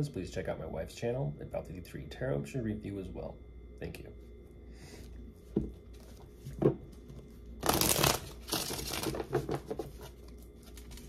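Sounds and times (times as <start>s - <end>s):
cards being shuffled: 7.6s - 11.0s.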